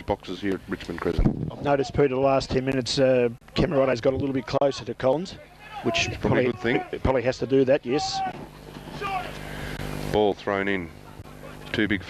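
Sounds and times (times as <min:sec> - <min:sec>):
low outdoor hum: 0:00.0 - 0:12.0
distant shouting voices: 0:03.7 - 0:10.1, 0:10.9 - 0:11.7.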